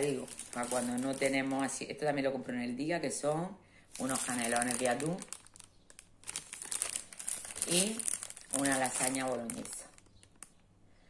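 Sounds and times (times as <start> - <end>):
plastic pouch crinkling: 0.0 - 1.7, 3.9 - 10.6.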